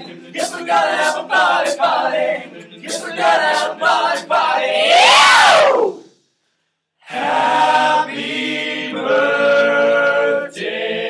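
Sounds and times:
male a cappella group singing: 0.0 - 5.2, 7.1 - 11.0.

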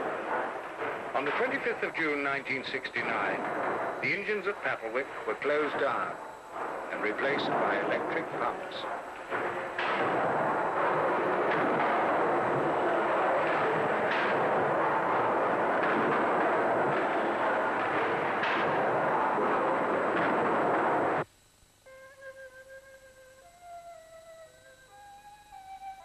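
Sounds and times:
steam hissing: 0.0 - 21.2
machinery knocking: 0.0 - 21.3
quiet flute music: 21.8 - 26.0.

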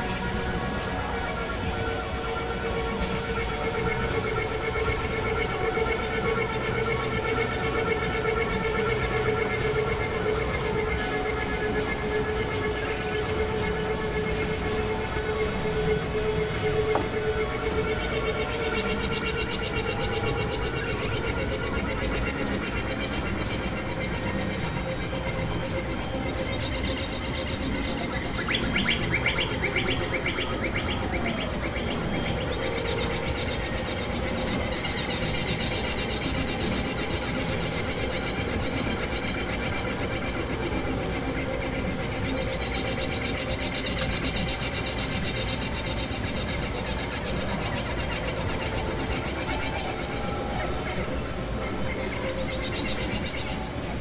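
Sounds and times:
synthesizer drones: 0.0 - 54.0.

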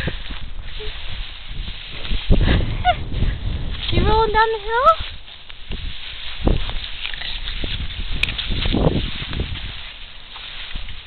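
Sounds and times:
dry grass rustling: 0.0 - 11.0.

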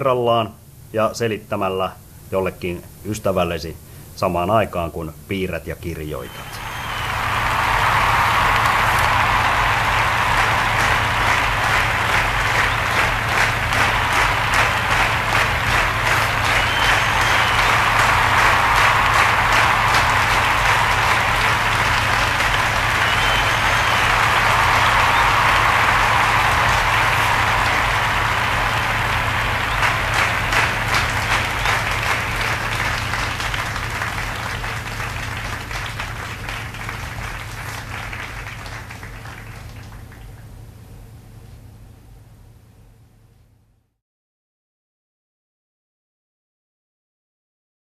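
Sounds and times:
crowd applauding: 6.1 - 40.5
low hum: 6.3 - 36.2.

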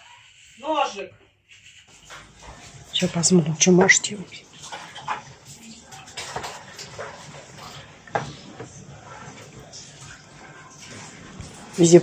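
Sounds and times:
shuffling and handling noise: 1.5 - 12.0.

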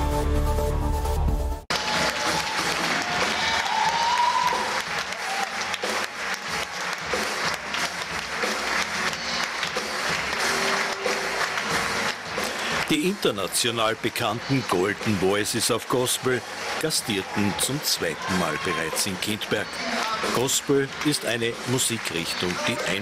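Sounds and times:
audience applauding and cheering: 1.1 - 23.0.

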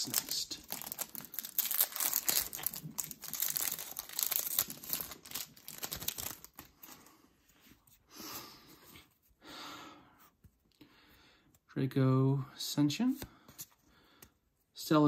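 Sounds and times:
foil wrapper tearing and crinkling: 0.0 - 6.8.

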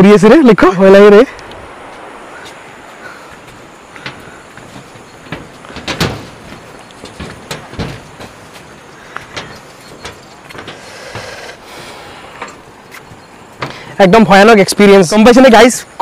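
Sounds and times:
steady hiss: 0.0 - 16.0
footsteps on plank deck: 1.4 - 14.3
bridge rattles: 2.9 - 15.2.

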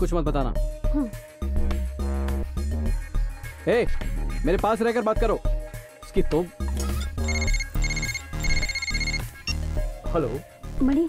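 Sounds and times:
phone ringtone beeps: 6.8 - 9.6.

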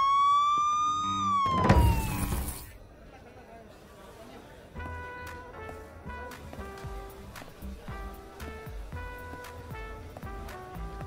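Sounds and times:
police siren wailing: 0.0 - 2.7.

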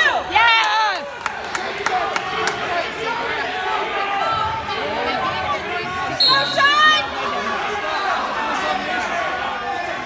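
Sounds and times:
murmur of crowd chatter: 0.0 - 10.0.

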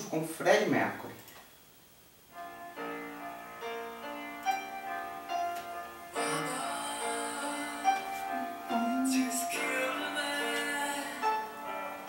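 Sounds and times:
piano chords through laptop speakers: 2.2 - 12.0.

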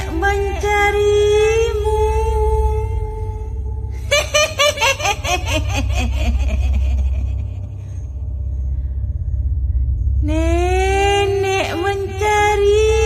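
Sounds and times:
low rumbling drone: 0.0 - 13.0
ghostly cackling laugh: 4.0 - 8.1.

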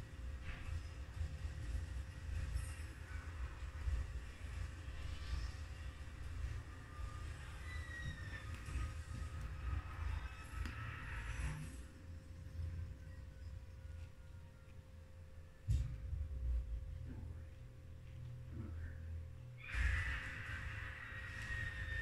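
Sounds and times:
faint horror film music: 0.0 - 22.0.

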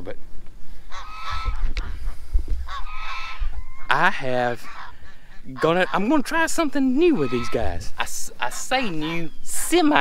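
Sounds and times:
geese honking: 0.8 - 10.0.

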